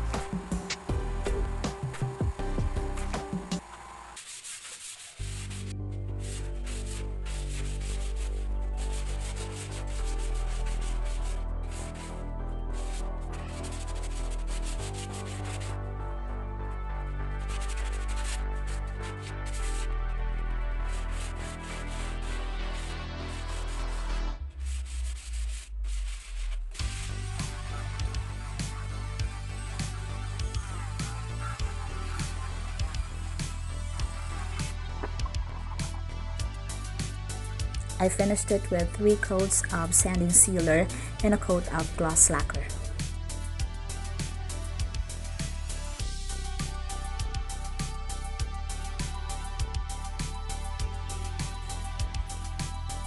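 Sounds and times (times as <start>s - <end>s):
background music: 0.0s - 3.7s, 5.2s - 53.0s
hand-sanding wood: 4.2s - 15.8s, 17.3s - 53.0s
knocks and clicks: 34.9s - 35.4s.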